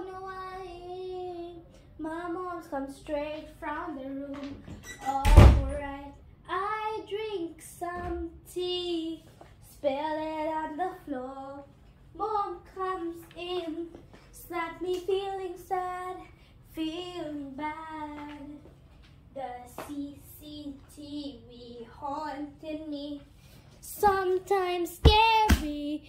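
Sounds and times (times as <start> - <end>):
child singing unaccompanied: 0.0 - 18.7, 19.3 - 23.2, 23.8 - 26.0.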